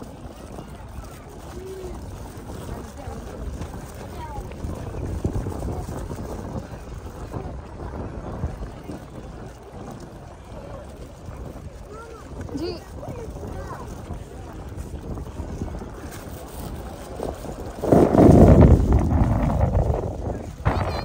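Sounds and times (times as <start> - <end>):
people's voices: 0.0 - 21.0
wind rumbling on microphone: 0.0 - 21.0.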